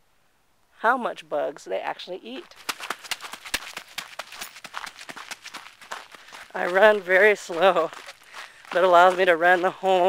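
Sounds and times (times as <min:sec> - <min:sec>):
jogging footsteps on gravel: 0:02.3 - 0:10.0.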